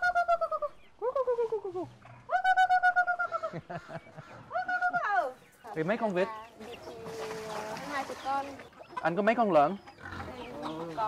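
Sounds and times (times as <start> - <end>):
woman calling poultry: 0.0 - 3.5, 4.4 - 9.0, 10.1 - 11.0.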